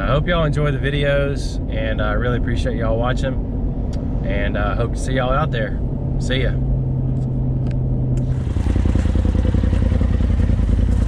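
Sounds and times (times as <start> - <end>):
road hum inside vehicle: 0.0 - 11.0
engine idling with rapid pulse: 8.2 - 11.0.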